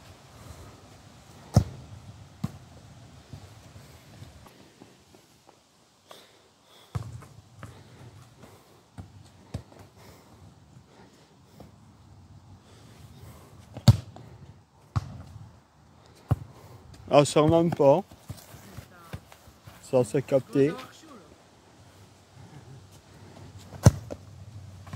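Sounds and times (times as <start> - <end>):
ball kicked and bouncing thuds: 1.4 - 3.6, 6.9 - 10.0, 13.6 - 15.4, 16.2 - 19.8, 23.4 - 24.9.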